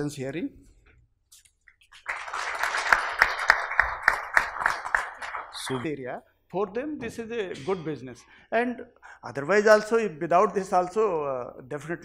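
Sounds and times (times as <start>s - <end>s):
audience applauding: 1.9s - 5.8s
loud claps: 1.9s - 5.8s.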